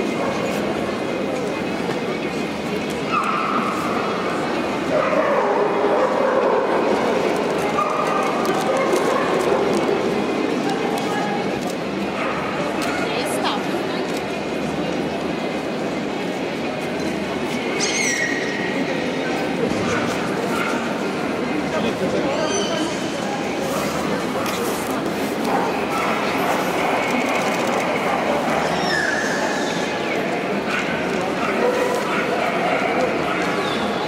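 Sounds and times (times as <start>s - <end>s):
hubbub of many voices: 0.0s - 34.0s
people talking: 0.0s - 34.0s
dog barking: 5.0s - 6.9s, 25.5s - 28.9s, 30.7s - 33.8s.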